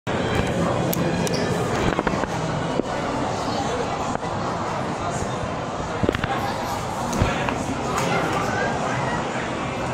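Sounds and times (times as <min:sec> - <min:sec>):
indistinct background voices: 0:00.3 - 0:09.9.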